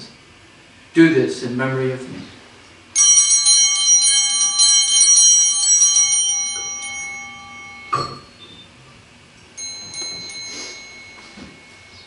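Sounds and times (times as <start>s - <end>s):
altar bells pealing: 3.0s - 8.6s, 9.5s - 12.0s.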